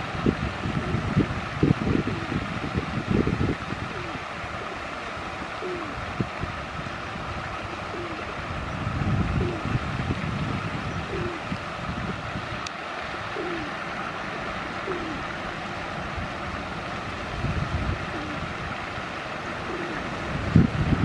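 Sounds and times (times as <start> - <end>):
wind on microphone: 0.0 - 21.0
bird cooing: 3.9 - 4.8, 5.6 - 6.0, 7.6 - 8.4, 9.4 - 9.7, 11.0 - 11.5, 13.4 - 15.3, 18.0 - 18.5, 19.6 - 20.1.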